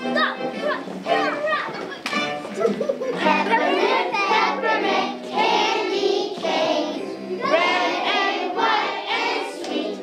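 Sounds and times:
children singing and calling out: 0:00.0 - 0:10.0
music: 0:00.0 - 0:10.0.

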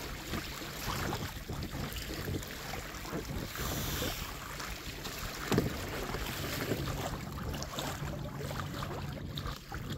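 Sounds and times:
small waves lapping against hull: 0:00.0 - 0:09.9
wind buffeting microphone: 0:00.0 - 0:09.9.

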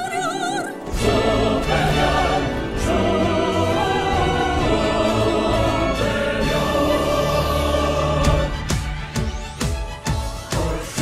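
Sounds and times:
choir and orchestra holding chord: 0:00.8 - 0:09.0, 0:10.5 - 0:11.0.

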